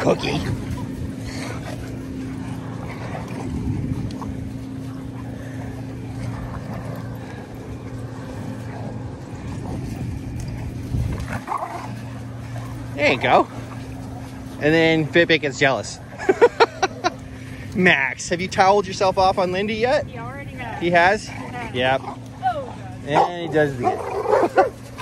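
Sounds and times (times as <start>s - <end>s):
dogs playing and scuffling: 0.0s - 25.0s
steady low hum: 0.0s - 25.0s.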